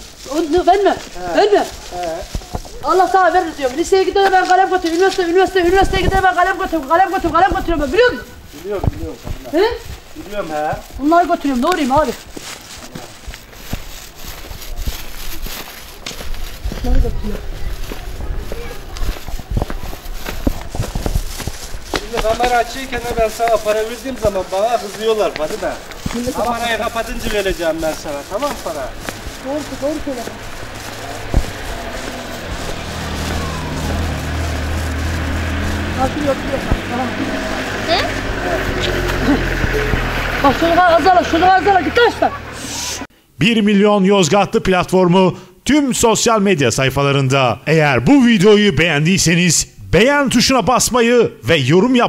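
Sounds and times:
footsteps on pavement: 0.0s - 43.1s
handheld microphone rumble: 0.0s - 43.1s
vehicle engine running: 16.2s - 43.1s.

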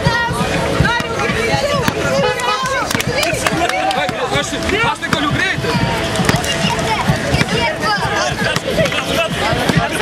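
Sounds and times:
crowd chatter and shouts: 0.0s - 10.0s
basketball bouncing on asphalt: 0.8s - 7.7s.

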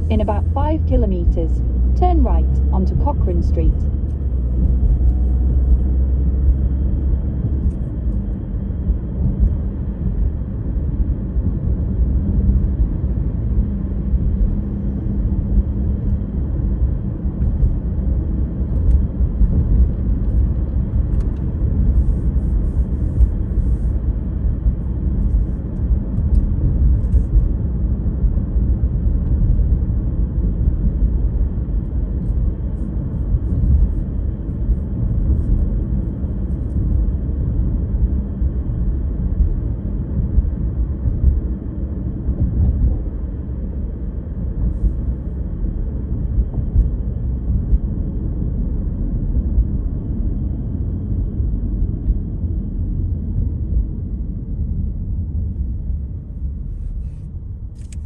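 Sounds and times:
road and tyre noise in car: 0.0s - 58.0s.

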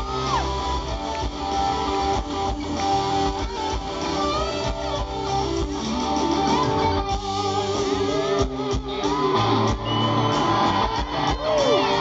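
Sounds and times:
bass guitar: 0.0s - 12.0s
drums: 0.0s - 12.0s
electric guitar lead: 0.0s - 12.0s.

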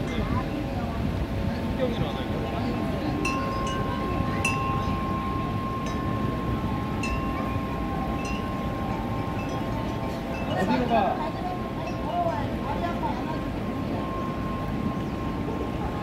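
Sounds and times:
low rush of noise: 0.0s - 16.0s
metal chimes ringing: 3.1s - 16.0s.

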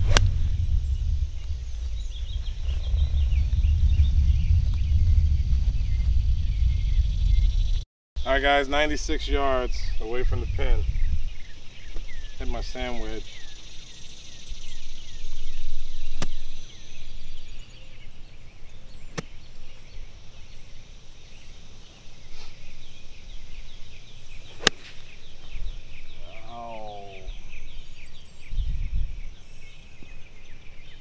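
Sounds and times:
golf club striking ball: 0.0s - 0.3s, 24.5s - 25.1s
birds chirping: 0.0s - 31.0s.

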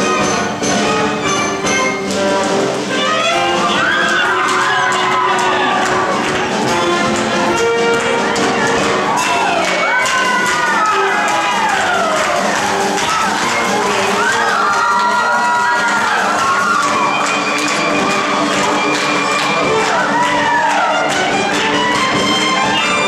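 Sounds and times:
instrumental dance music: 0.0s - 23.0s
crowd whooping and cheering: 3.0s - 23.0s.

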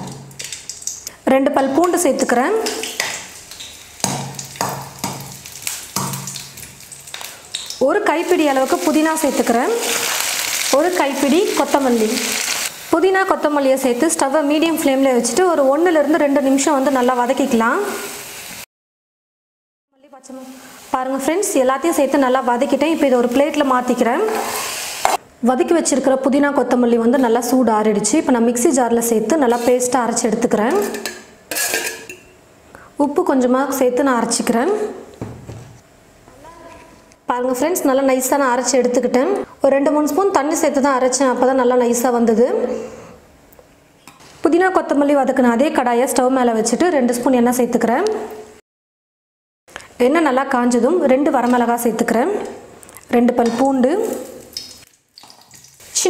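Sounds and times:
chillies and garlic sizzling in oil: 1.7s - 18.7s, 20.2s - 25.2s, 27.2s - 32.1s, 50.4s - 56.0s
steel plate scraping jar rim: 31.5s - 32.2s.

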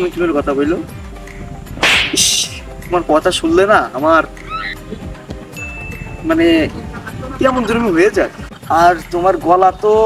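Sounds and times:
background music: 0.0s - 10.0s
whip swish: 1.8s - 2.6s.

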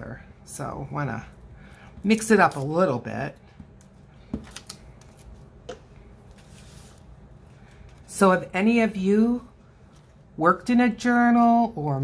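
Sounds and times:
paper rustling: 6.2s - 7.1s.

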